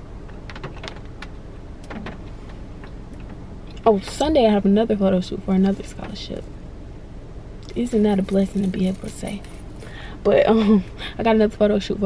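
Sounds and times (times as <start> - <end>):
low rumble inside car cabin: 0.0 - 12.0.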